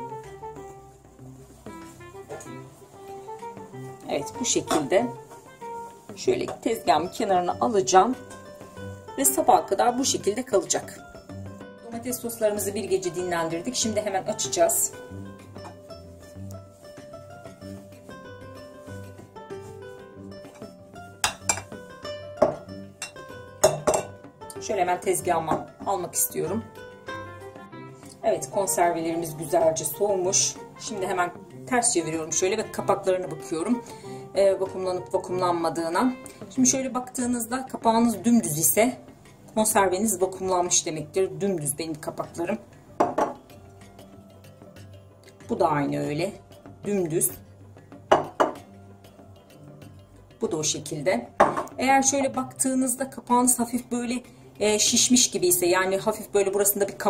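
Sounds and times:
background music with steady beat: 0.0s - 57.0s
glass jars clinking on countertop: 21.2s - 21.7s, 22.4s - 24.2s, 43.0s - 43.4s, 48.1s - 48.6s, 51.4s - 51.8s.

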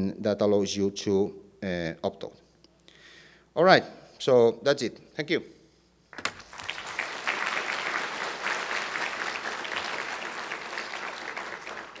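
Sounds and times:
audience applauding: 6.2s - 12.0s.

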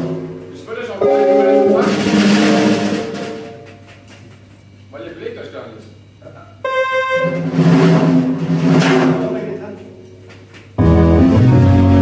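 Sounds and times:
keyboard and drums jazz: 0.0s - 4.6s, 6.7s - 12.0s.

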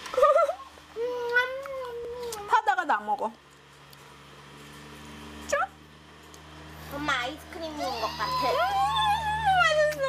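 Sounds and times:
child squealing and humming: 7.7s - 9.8s.

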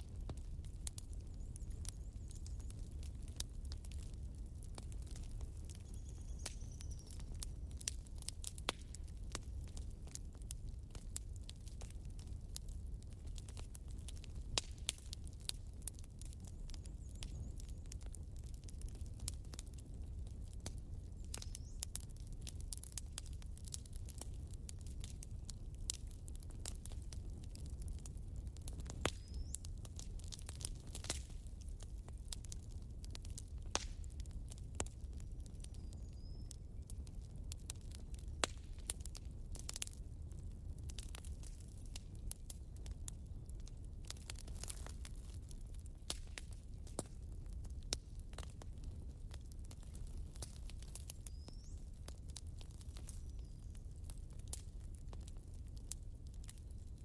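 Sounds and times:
campfire crackling and popping: 0.0s - 57.0s
low rumble of burning wood: 0.0s - 57.0s.

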